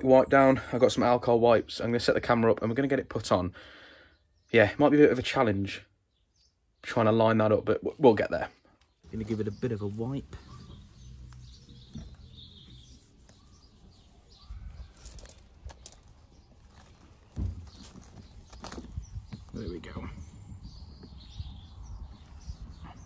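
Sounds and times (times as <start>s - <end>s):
birds chirping faintly: 0.0s - 23.0s
light knocks and rubbing: 9.1s - 23.0s
thump: 17.3s - 18.0s.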